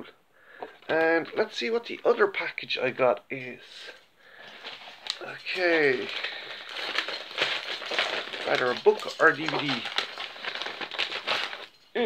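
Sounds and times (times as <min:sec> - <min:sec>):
paper mailer rustling and crinkling: 0:04.3 - 0:11.8.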